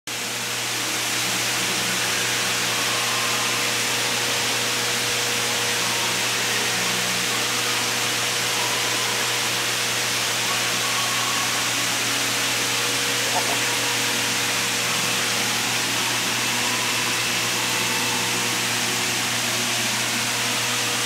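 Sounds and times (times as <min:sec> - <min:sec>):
running water rushing: 0:06.8 - 0:21.0
low steady hum: 0:12.0 - 0:20.5.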